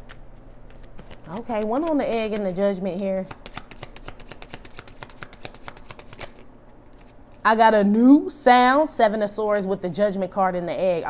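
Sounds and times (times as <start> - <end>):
cards being shuffled: 0.0 - 7.4.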